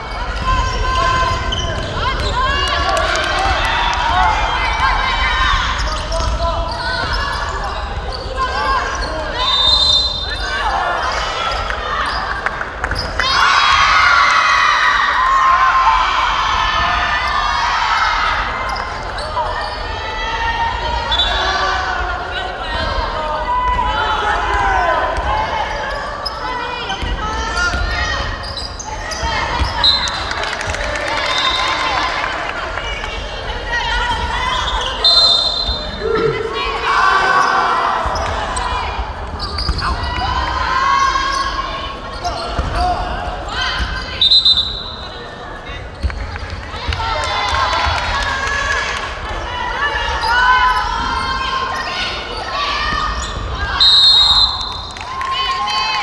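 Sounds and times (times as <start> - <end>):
basketball bouncing on gym floor: 42.5 - 42.8.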